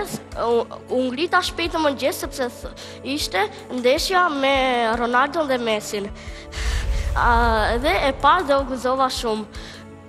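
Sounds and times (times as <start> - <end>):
child speaking: 0.0 - 6.1, 7.2 - 9.5
background music: 0.0 - 10.0
sharp intake of breath: 6.2 - 7.2.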